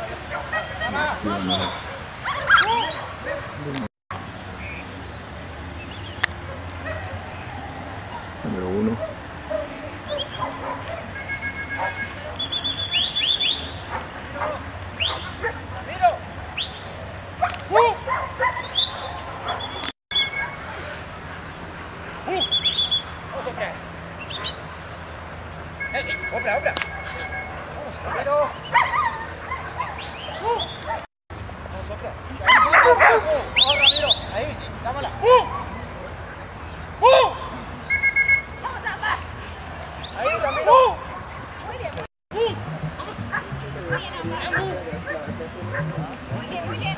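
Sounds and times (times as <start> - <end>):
dogs yipping and whining: 0.3 - 3.6, 6.5 - 15.6, 16.5 - 23.2, 24.1 - 24.7, 25.8 - 31.1, 32.4 - 34.2, 44.4 - 46.1.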